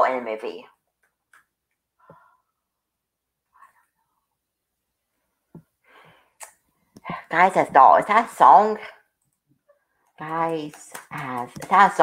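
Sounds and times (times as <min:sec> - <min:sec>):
person breathing faintly: 0:02.0 - 0:02.8, 0:05.1 - 0:07.3.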